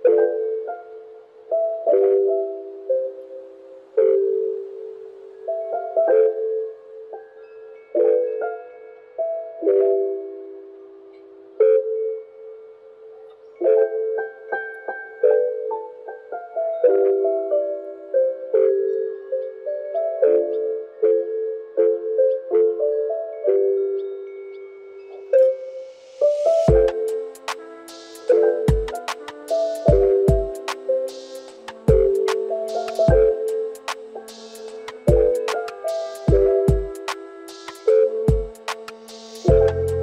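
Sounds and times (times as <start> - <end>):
lofi music with soft piano chords: 0.0 - 40.0.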